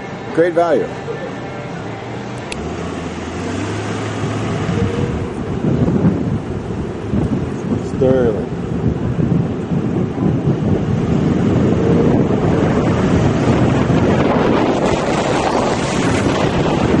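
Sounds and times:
car driving on road: 0:00.0 - 0:17.0
wind buffeting microphone: 0:02.0 - 0:17.0.

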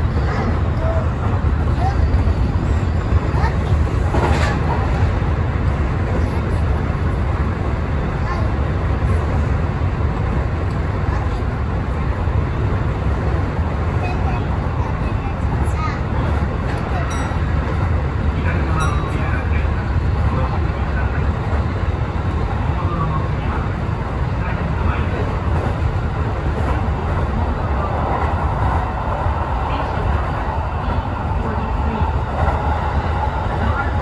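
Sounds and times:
train wheels rumbling on rails: 0:00.0 - 0:34.0.

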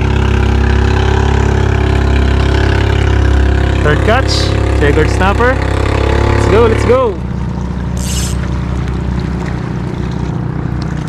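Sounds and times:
steady engine drone: 0:00.0 - 0:11.0.

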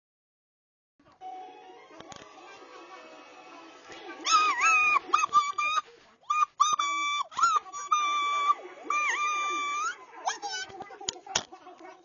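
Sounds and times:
squeaky cartoon calls: 0:04.2 - 0:10.7.

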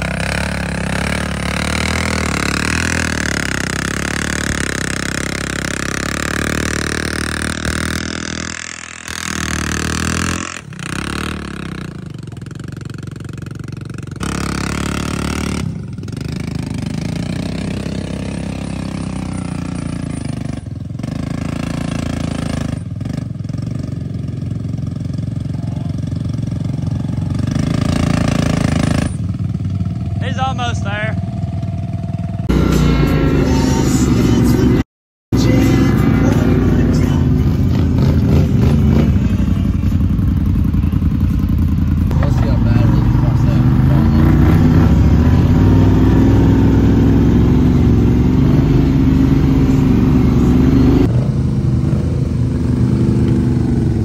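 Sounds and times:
atv engine revving: 0:00.0 - 0:34.8, 0:35.4 - 0:54.0.

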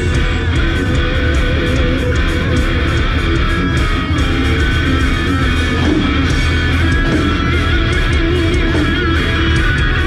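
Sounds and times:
bass: 0:00.0 - 0:10.0
electric guitar: 0:00.0 - 0:10.0
heavy rock music: 0:00.0 - 0:10.0.

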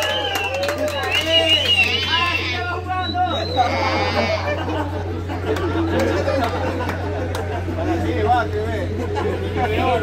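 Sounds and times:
indistinct chatter of voices: 0:00.0 - 0:10.0
steady low hum: 0:01.5 - 0:10.0.

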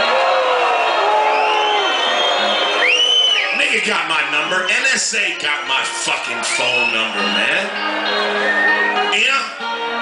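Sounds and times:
crowd cheering and whooping: 0:00.0 - 0:09.0
shrill rising whistle: 0:01.2 - 0:09.1
band playing quietly: 0:03.5 - 0:10.0.

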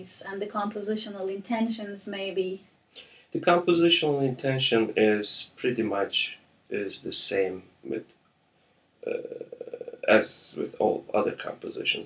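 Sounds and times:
man's creaky hesitation sound: 0:09.0 - 0:10.9.

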